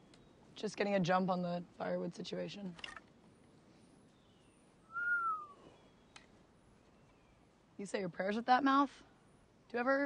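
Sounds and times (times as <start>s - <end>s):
faint woodland background: 0.0s - 10.0s
short rising and falling whistle: 4.9s - 5.7s
faint click: 6.1s - 6.4s.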